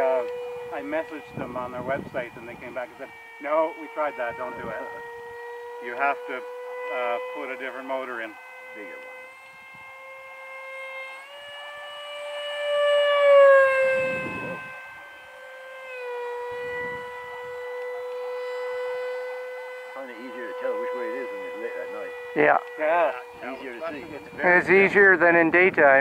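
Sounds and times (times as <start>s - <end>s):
electric ducted fan whine: 0.0s - 26.0s.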